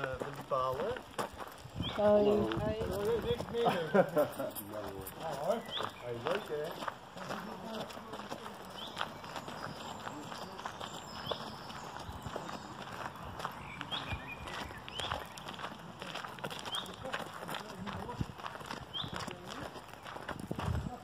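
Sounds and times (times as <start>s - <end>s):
footsteps on gravel: 0.0s - 21.0s.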